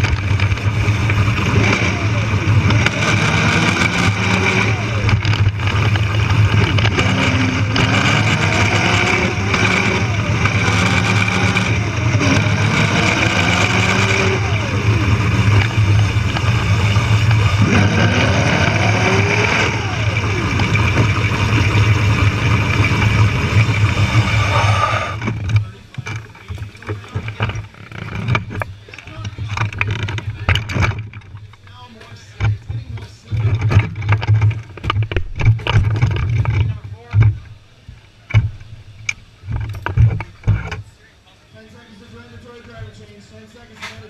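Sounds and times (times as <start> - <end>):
electric motor whining: 0.0 - 31.0
knocks and clatter: 2.5 - 24.4, 25.2 - 37.5, 38.3 - 40.8.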